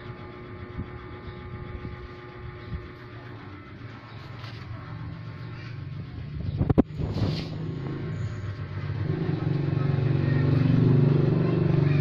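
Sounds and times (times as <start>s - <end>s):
motor hum: 0.0s - 12.0s
air rushing through hoses: 6.9s - 7.8s.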